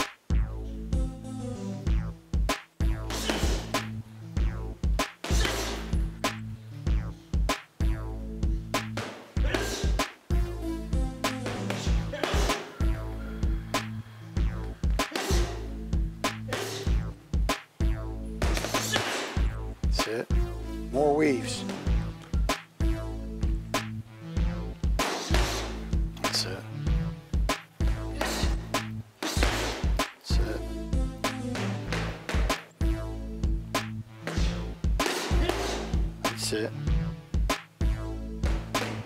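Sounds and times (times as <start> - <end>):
background music: 0.0 - 39.0
drum beat: 1.9 - 6.4, 14.4 - 20.5, 27.3 - 36.4
sustained bass line: 19.4 - 24.8, 30.4 - 34.9
punches thudding on heavy bag: 27.8 - 30.0.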